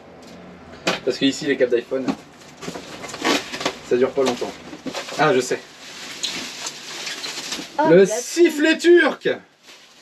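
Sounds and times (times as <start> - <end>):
packaging rustling and crinkling: 2.3 - 8.1, 9.6 - 10.0.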